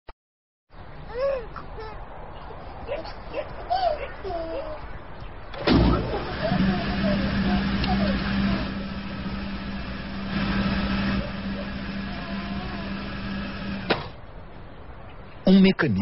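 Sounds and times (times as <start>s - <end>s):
steady hum: 5.5s - 14.4s
car driving steadily: 5.7s - 9.0s.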